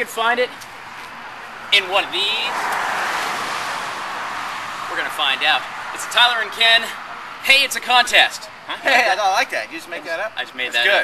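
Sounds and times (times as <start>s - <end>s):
car passing by: 0.8s - 7.4s.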